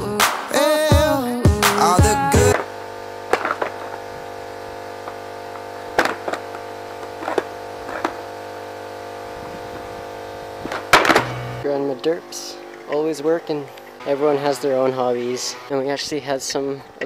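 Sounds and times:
steady electrical hum: 2.3s - 17.0s.

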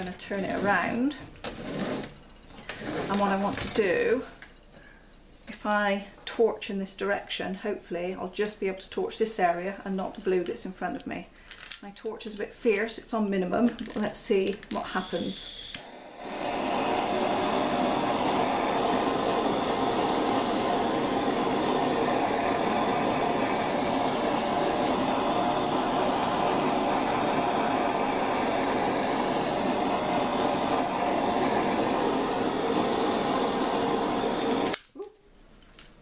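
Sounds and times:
torch flame hissing: 0.0s - 4.2s, 14.0s - 35.0s
torch click: 13.6s - 35.0s.

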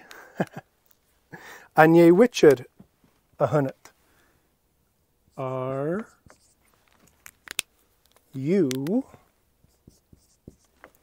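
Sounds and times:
marker scratching on whiteboard: 5.3s - 6.8s, 9.1s - 11.0s
marker tip tapping: 9.7s - 11.0s.

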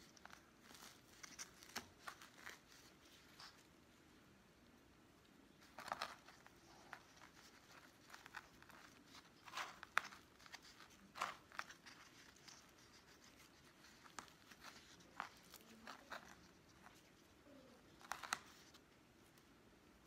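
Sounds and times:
hands rustling potting soil: 0.0s - 3.7s, 5.6s - 18.9s
handling noises: 5.6s - 19.4s.

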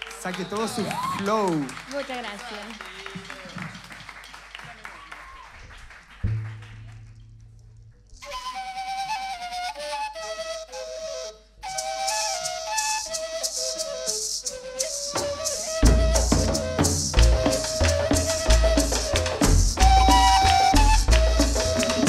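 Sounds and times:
flutes playing cumbia melody: 8.2s - 22.0s
maraca shaking: 11.6s - 22.0s.

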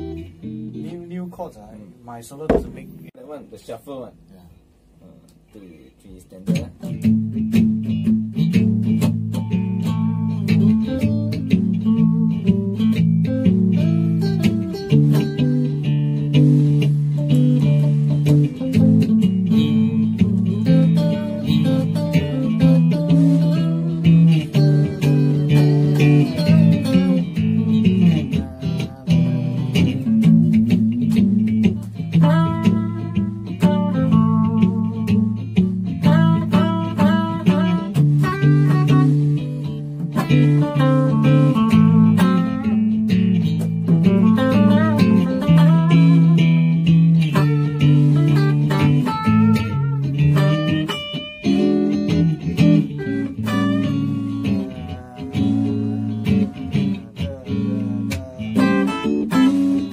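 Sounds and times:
rhythm guitar chords: 0.0s - 59.9s
lead guitar line: 2.5s - 3.2s, 6.4s - 59.9s.

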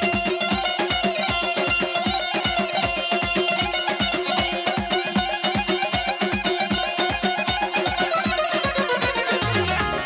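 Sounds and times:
lute strummed fast: 0.0s - 10.0s
steady beat pulsing: 2.2s - 10.0s.

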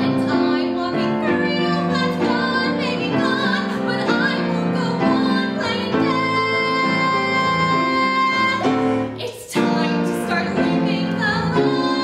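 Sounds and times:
instrumental accompaniment: 0.0s - 12.0s
woman singing: 0.0s - 12.0s.

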